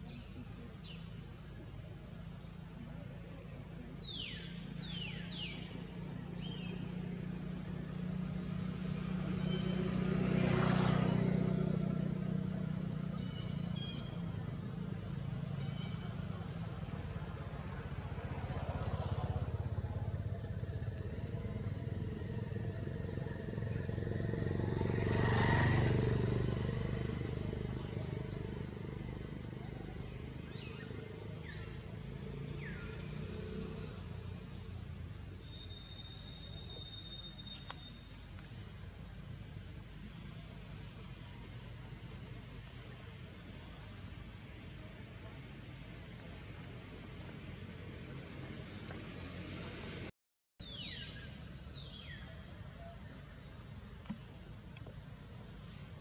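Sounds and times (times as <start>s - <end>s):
distant vehicles passing: 0.0s - 56.0s.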